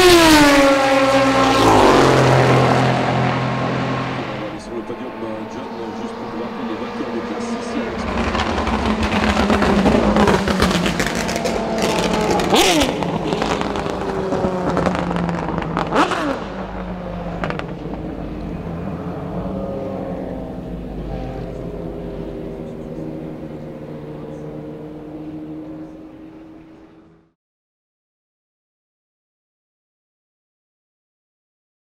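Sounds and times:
engine downshifts: 0.0 - 27.4
race car engine passing: 0.0 - 27.4.

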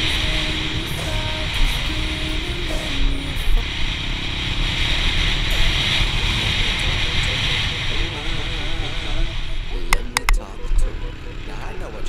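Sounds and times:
song with singing: 0.0 - 3.8, 5.5 - 12.0.

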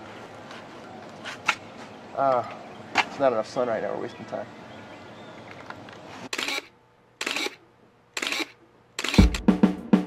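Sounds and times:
camera shutter firing: 6.3 - 7.6, 8.2 - 9.5
music with drum hits: 9.2 - 10.0.

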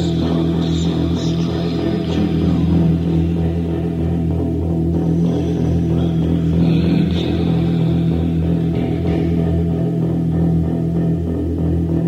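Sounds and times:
rock band low drone: 0.0 - 12.0.

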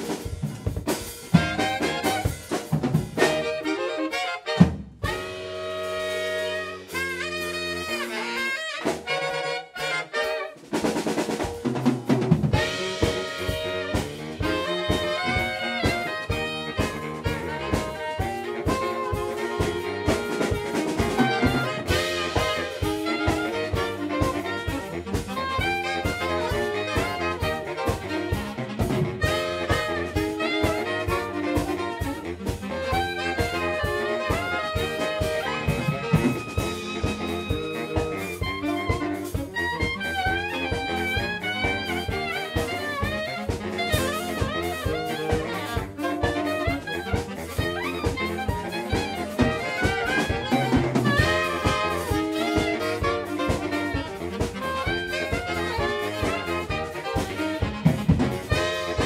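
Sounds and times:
drum kit beat: 0.0 - 59.0
saxophone quartet playing jazz: 0.0 - 59.0.

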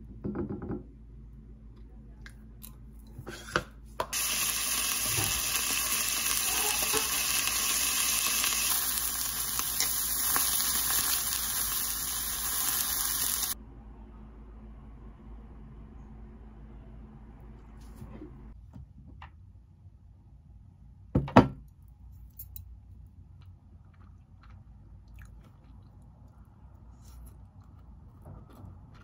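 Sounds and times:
fish sizzling in a pan: 4.1 - 13.6.

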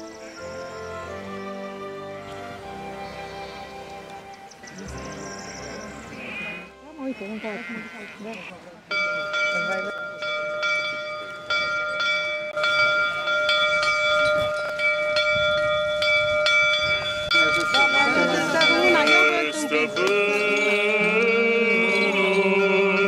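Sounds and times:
sheep bleating: 6.1 - 8.7
church bells ringing: 8.8 - 23.0.

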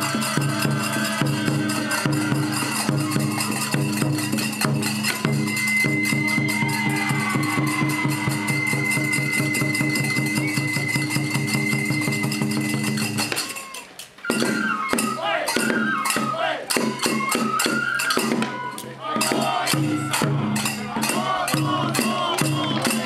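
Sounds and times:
voices calling out: 0.0 - 11.0, 13.2 - 17.4, 18.0 - 23.0
festival drum music: 0.0 - 23.0.

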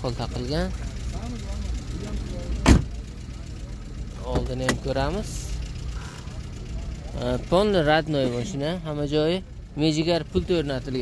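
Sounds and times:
low steady rumble: 0.0 - 11.0
car door thumping: 2.6 - 3.1, 4.2 - 4.9.

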